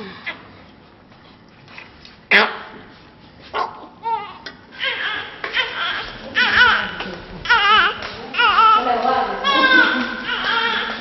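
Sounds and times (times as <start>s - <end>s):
newborn baby crying: 4.0s - 11.0s.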